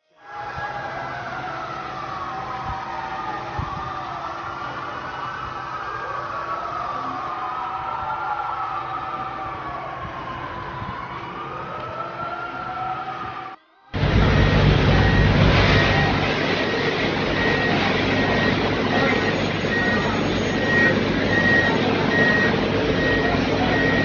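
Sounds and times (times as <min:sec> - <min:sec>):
city noise: 0:00.0 - 0:24.0
emergency sirens wailing: 0:00.0 - 0:24.0.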